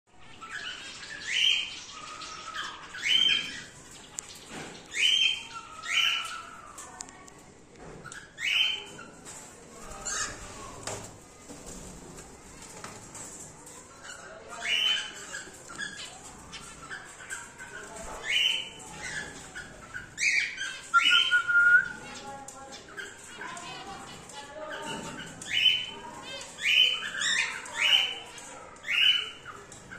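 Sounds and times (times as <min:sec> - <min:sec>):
birds chirping: 0:00.1 - 0:10.7, 0:11.7 - 0:29.9.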